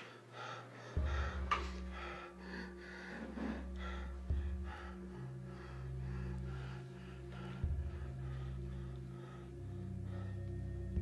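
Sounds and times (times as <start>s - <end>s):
low steady drone: 0.0s - 11.0s
person breathing heavily: 0.0s - 11.0s.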